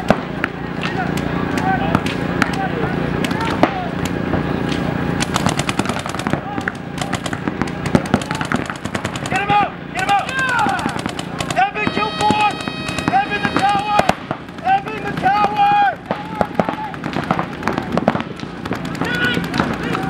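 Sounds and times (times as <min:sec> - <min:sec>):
paintball markers firing: 0:00.0 - 0:20.0
players shouting: 0:00.0 - 0:20.0.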